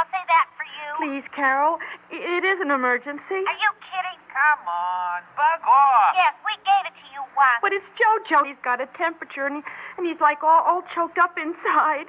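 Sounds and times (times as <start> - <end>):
radio drama dialogue: 0.0 - 10.4.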